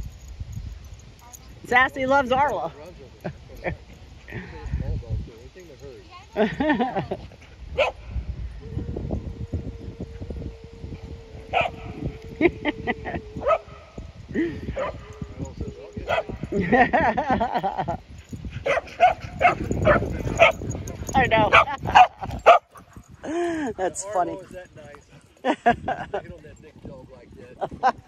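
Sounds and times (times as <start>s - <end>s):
person laughing: 6.4s - 7.4s, 12.2s - 13.4s, 16.5s - 18.0s, 23.2s - 23.8s, 25.4s - 26.3s
dogs barking: 7.8s - 8.0s, 11.5s - 12.1s, 12.8s - 13.9s, 14.7s - 15.2s, 16.0s - 16.5s, 18.6s - 23.0s.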